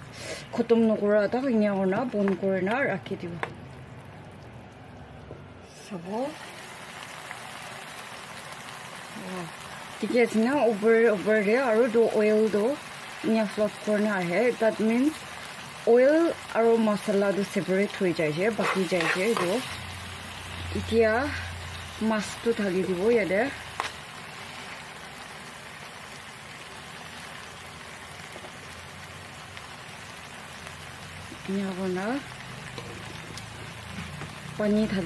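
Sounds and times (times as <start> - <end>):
fish sizzling in oil: 6.0 - 35.0.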